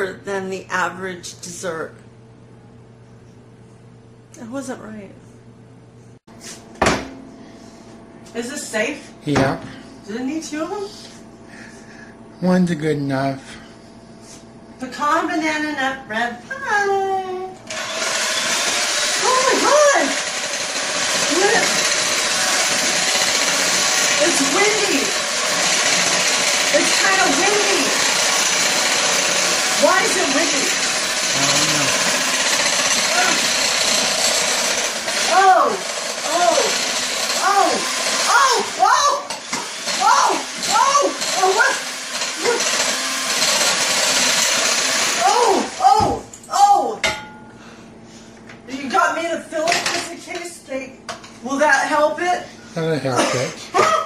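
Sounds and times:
electric hand mixer running: 17.6 - 46.0.

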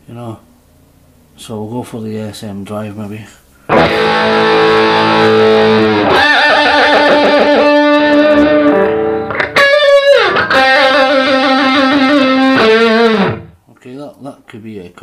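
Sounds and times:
distorted electric guitar lead: 3.7 - 13.6.

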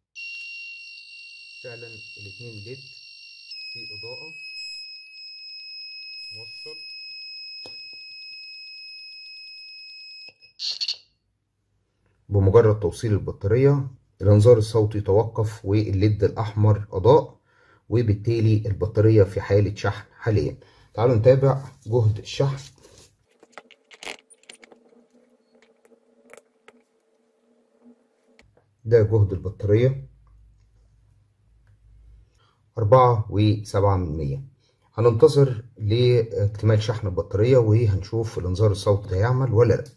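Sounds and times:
high-pitched buzzer alarm tone: 0.0 - 11.1.

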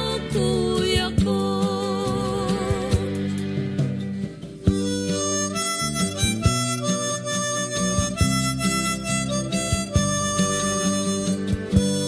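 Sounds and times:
acoustic guitar: 0.0 - 12.0
harmonica melody: 4.6 - 12.0.

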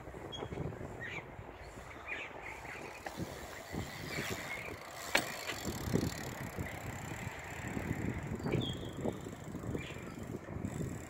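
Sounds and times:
bike tyres rolling on concrete: 0.0 - 11.0.

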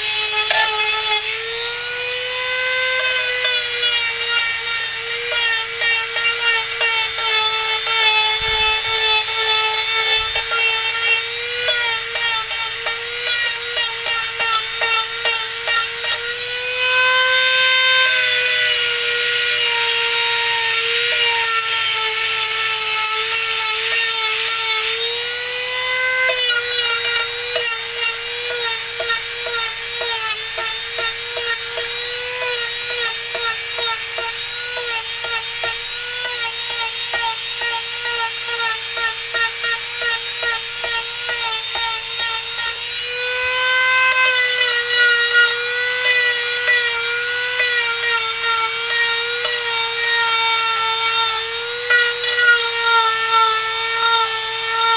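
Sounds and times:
rotary tool sanding wood: 0.0 - 54.9.

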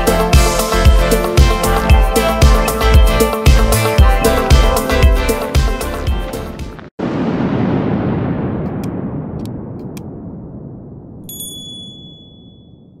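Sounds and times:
notification bell ding: 11.3 - 12.8.

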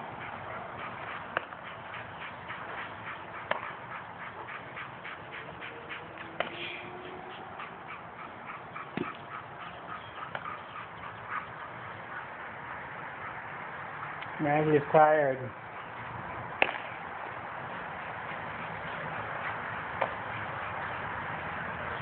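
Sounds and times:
dog panting: 0.0 - 22.0
sharp smacks: 3.4 - 3.8, 6.4 - 6.6, 8.9 - 9.2, 16.6 - 17.0, 20.0 - 20.2.

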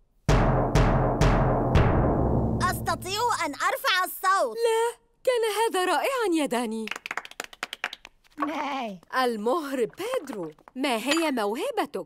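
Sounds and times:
child's voice: 2.6 - 5.0.

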